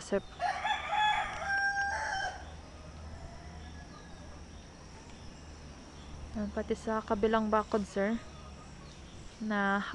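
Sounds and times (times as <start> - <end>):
rooster crowing: 0.4 - 4.4.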